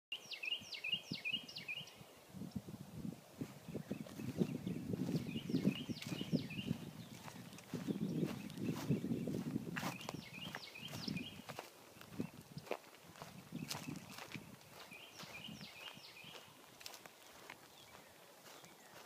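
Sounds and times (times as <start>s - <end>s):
songbird singing: 0.1s - 19.0s
footsteps on dry lawn: 3.2s - 19.0s.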